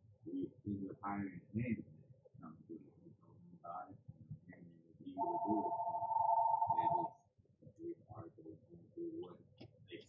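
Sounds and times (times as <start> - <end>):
faint talk: 0.3 - 7.1
two-pitch electronic tone: 5.2 - 7.1.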